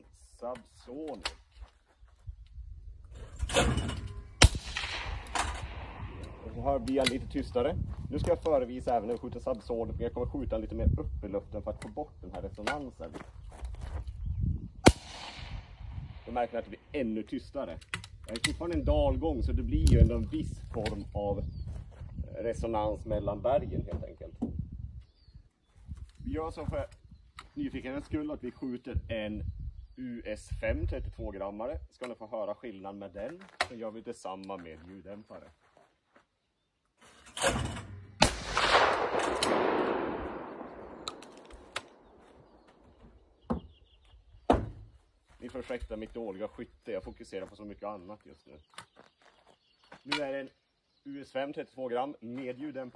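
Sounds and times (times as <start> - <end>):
suppressed shotgun shot with echo: 3.5 - 6.4, 14.8 - 16.3, 38.2 - 42.6
gun handling clicks: 17.8 - 18.8, 38.4 - 42.2.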